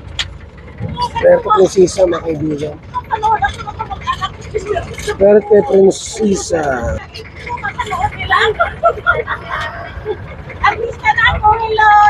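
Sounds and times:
vehicle engine rumble: 0.0s - 12.0s
people chattering: 0.8s - 12.0s.

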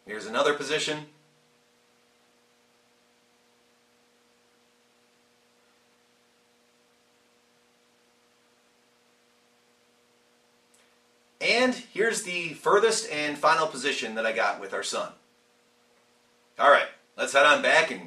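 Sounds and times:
faint electrical hum: 0.0s - 18.0s.

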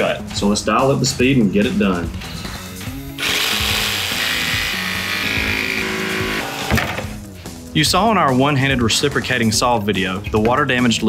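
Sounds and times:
jigsaw cutting plywood: 3.2s - 7.1s.

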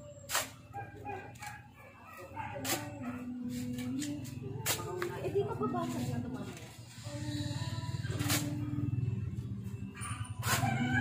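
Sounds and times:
shovel digging sand: 0.3s - 0.7s, 8.1s - 8.6s, 10.3s - 11.0s.

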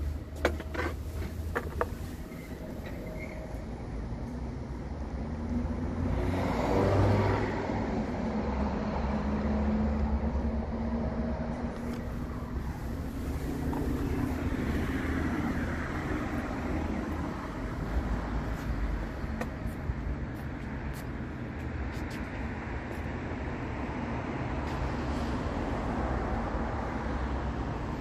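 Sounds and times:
traffic noise: 0.0s - 28.0s
vehicle engine rumbling: 0.0s - 28.0s.

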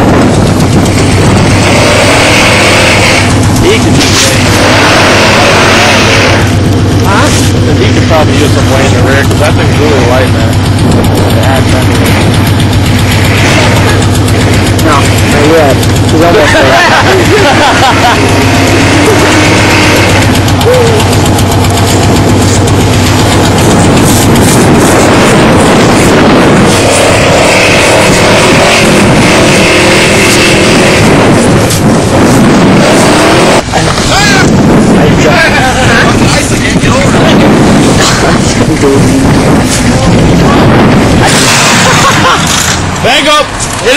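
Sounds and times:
truck engine running hard: 0.0s - 43.9s
wheels spinning in snow: 0.0s - 43.9s.

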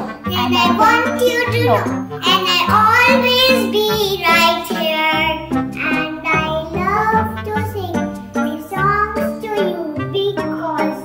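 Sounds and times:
instrumental backing of held notes: 0.0s - 11.0s
child singing: 0.3s - 11.0s.

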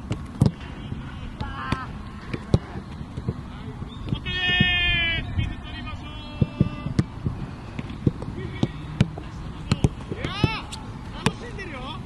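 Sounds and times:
footballs being kicked: 1.4s - 4.8s.

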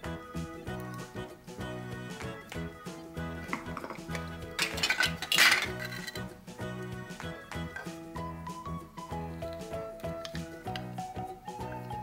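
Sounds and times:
background music: 0.0s - 12.0s
plastic toy pieces clattering: 3.8s - 6.3s.

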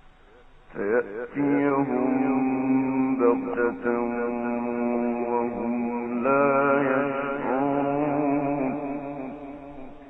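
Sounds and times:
man chanting: 0.7s - 10.0s.

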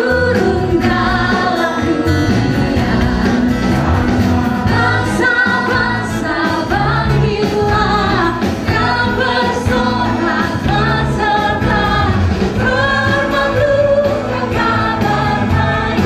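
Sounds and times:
group singing praise song: 0.0s - 16.0s
live band with guitar and drums: 0.0s - 16.0s.

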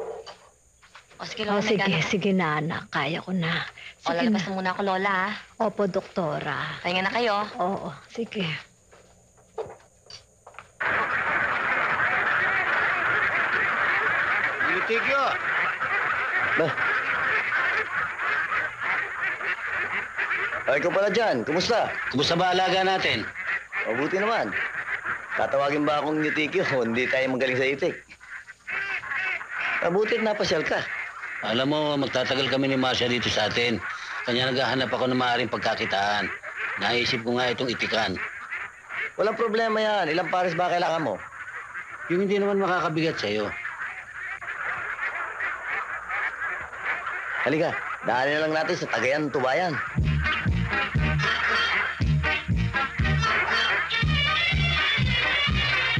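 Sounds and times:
ducks quacking: 1.2s - 5.5s, 10.8s - 55.9s.

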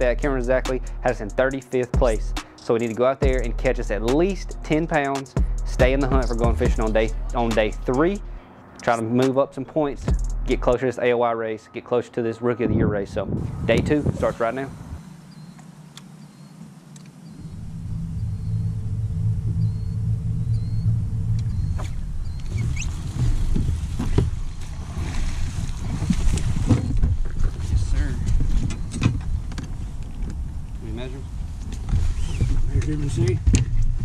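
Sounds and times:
thin high whine: 13.4s - 25.0s
electric motor humming: 14.6s - 23.8s
rustling: 21.7s - 32.8s.

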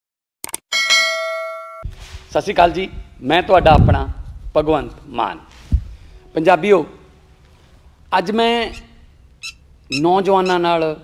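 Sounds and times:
notification bell ding: 0.7s - 1.9s.

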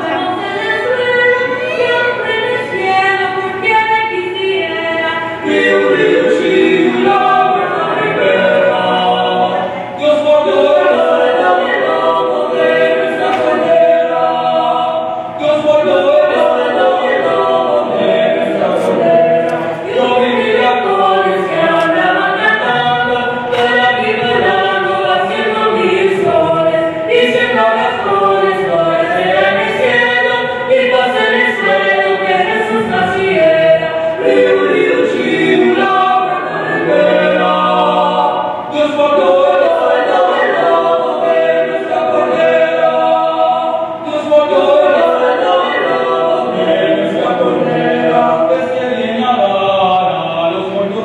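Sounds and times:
vocal quartet singing a cappella: 0.0s - 51.0s.

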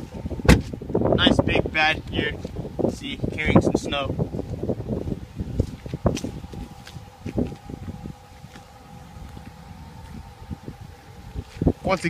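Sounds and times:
wind buffeting microphone: 0.0s - 12.0s
soft footsteps: 4.2s - 12.0s
faint steady tone: 4.6s - 12.0s.

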